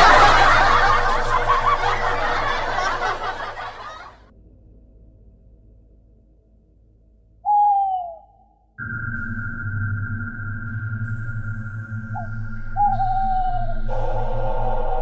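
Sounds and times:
loud falling tone: 0.0s - 3.9s, 8.8s - 15.0s
eerie drone: 0.0s - 6.8s, 7.5s - 15.0s.

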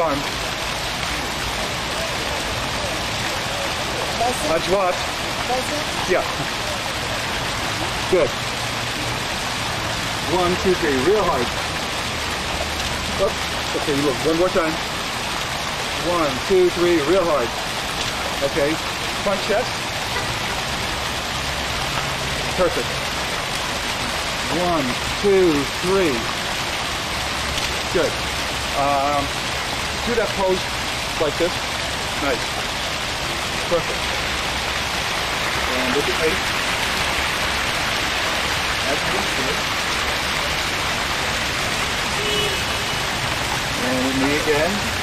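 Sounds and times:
fountain water splashing into basin: 0.0s - 45.0s.

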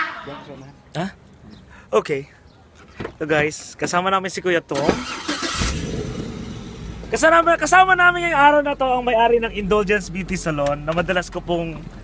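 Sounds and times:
car engine starting and idling: 4.7s - 12.0s.

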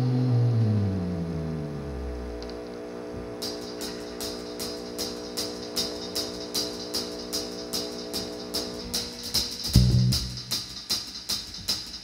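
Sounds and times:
electric guitar and bass: 0.0s - 3.5s, 9.8s - 10.4s
amp hum: 0.0s - 12.0s
hi-hat taps: 3.4s - 12.0s.

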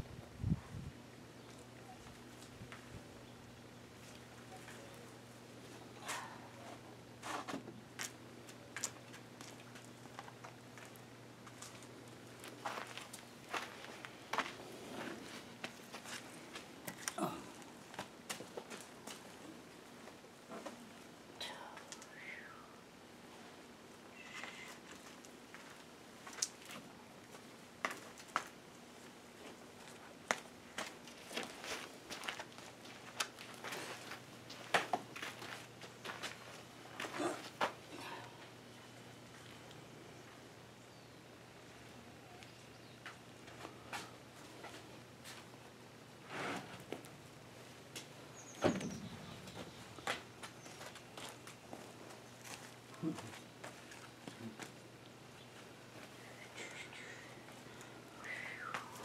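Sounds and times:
faint low hum: 0.0s - 59.0s.

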